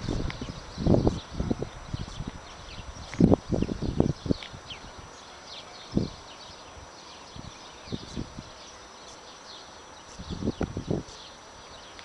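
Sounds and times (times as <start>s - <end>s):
faint high chirping: 0.0s - 12.0s.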